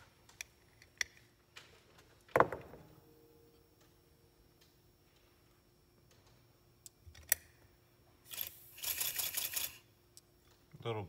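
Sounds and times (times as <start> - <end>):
short air hiss: 8.2 - 9.8.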